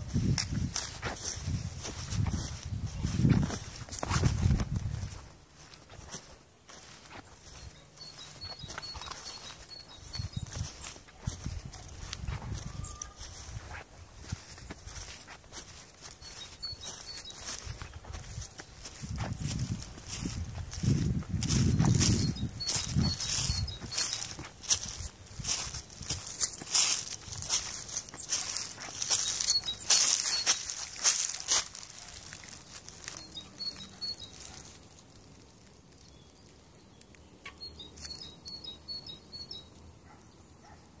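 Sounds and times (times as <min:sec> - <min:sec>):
footsteps on grass and dirt: 0:00.0 - 0:36.2, 0:38.0 - 0:38.8
small bird chirping: 0:05.0 - 0:34.8, 0:36.0 - 0:39.9.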